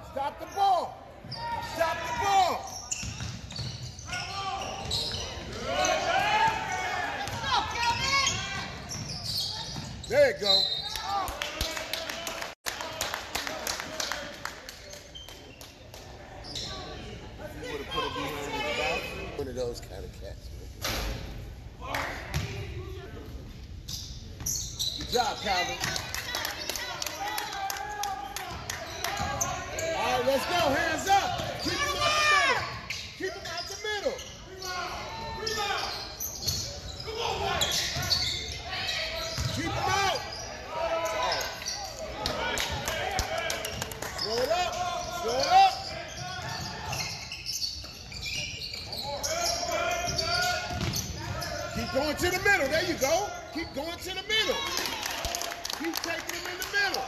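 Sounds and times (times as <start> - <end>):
echoing voices in gym: 0.0 - 57.0
sneakers squeaking: 0.1 - 11.3, 14.8 - 27.5, 28.4 - 54.6.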